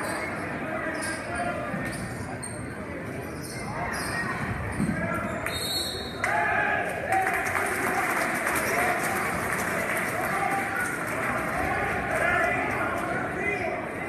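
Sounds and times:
hubbub of crowd voices: 0.0 - 14.0
sneakers squeaking: 0.9 - 6.1.

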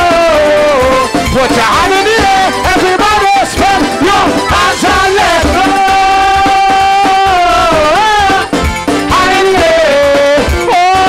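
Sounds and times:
steady drum beat: 0.0 - 11.0.

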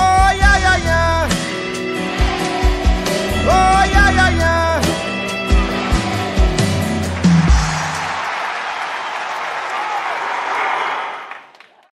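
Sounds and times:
audience applauding: 1.9 - 3.5, 5.4 - 12.0.

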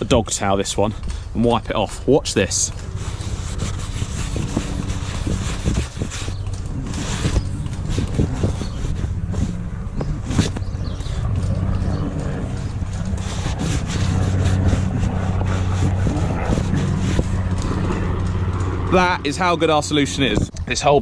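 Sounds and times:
low engine hum: 0.0 - 21.0
towel rubbing on fabric: 2.8 - 18.0.

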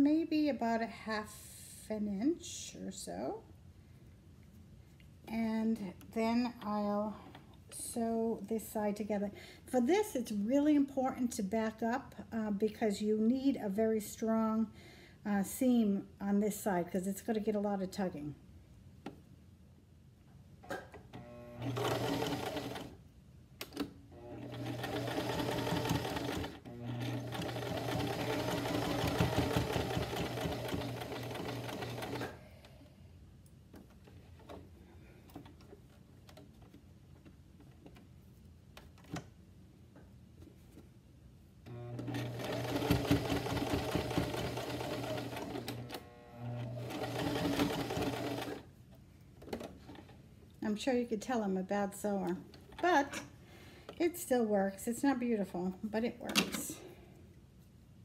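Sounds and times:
electric sewing machine stitching: 21.2 - 23.0, 24.1 - 32.4, 41.7 - 48.6.

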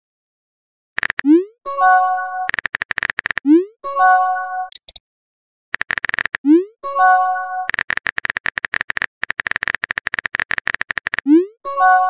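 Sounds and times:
keyboard typing clicks: 1.0 - 1.5, 2.4 - 3.7, 4.7 - 5.0, 5.8 - 6.6, 7.6 - 11.4.

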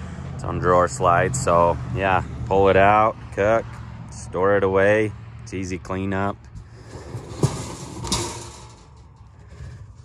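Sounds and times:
handling noise: 6.5 - 9.7
stove sliding on metal drawer slides: 6.8 - 8.8.

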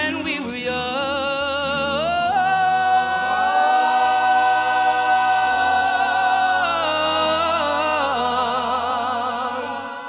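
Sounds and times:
male choir holding a chord: 0.0 - 10.0
wavering vibrato lead voice: 0.0 - 10.0.

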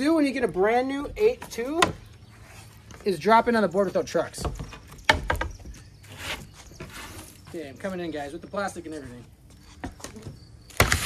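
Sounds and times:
skateboard deck slapping wood: 10.7 - 11.0.

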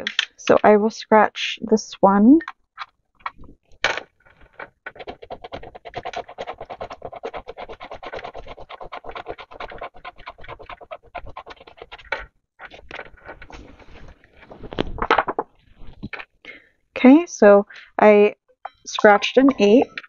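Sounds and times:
coin scratching scratch-off sticker: 4.6 - 14.1.

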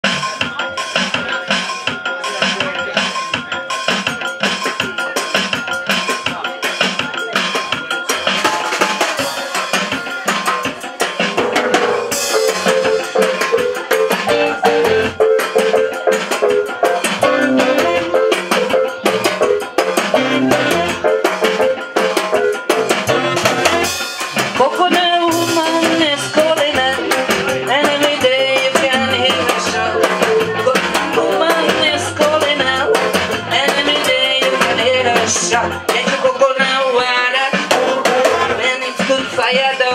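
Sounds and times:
live band playing calypso: 0.0 - 39.9
timbales and drum kit beat: 0.0 - 39.9.

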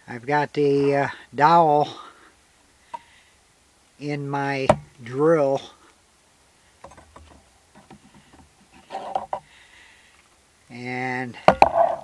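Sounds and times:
scrape on workbench: 8.8 - 9.4.

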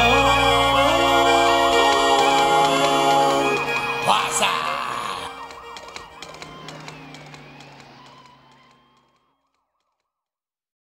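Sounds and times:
country band closing chord: 0.0 - 8.9
police siren wailing: 0.4 - 9.7.

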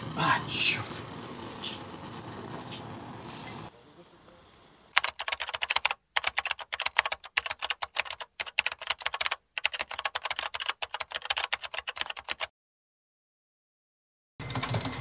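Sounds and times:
keyboard typing: 5.0 - 12.5, 14.4 - 15.0.

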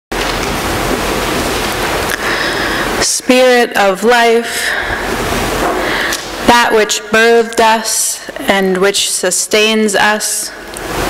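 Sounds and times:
loud steady hiss: 0.1 - 11.0.

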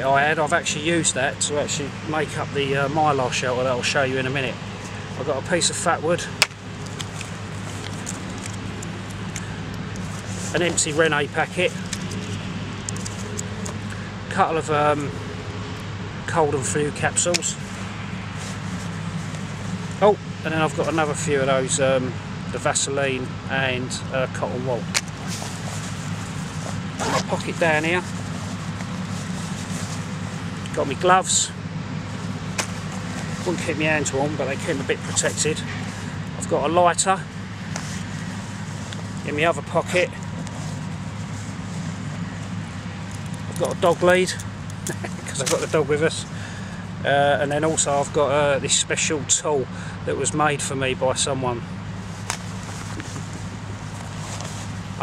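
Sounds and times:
low machinery drone: 0.0 - 55.0
low mechanical factory hum: 0.0 - 55.0.

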